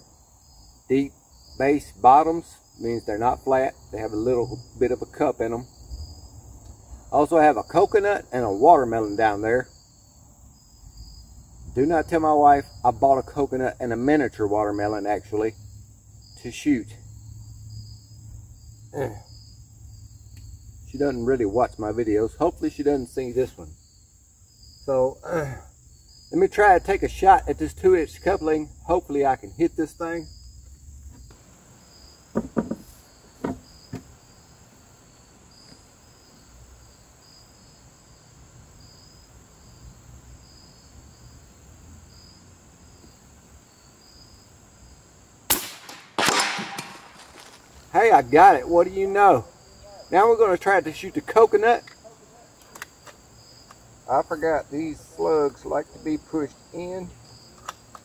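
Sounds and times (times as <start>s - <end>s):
crickets chirping: 0.0s - 58.0s
insects trilling: 0.0s - 58.0s
air rifle shot: 45.5s - 47.5s.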